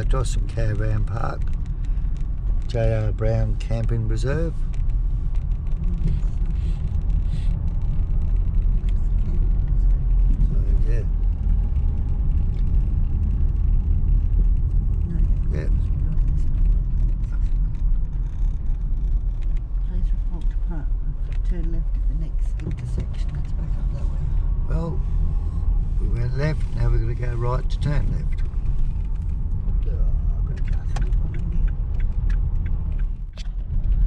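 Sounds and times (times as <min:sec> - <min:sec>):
engine and tyre rumble: 0:00.0 - 0:34.0.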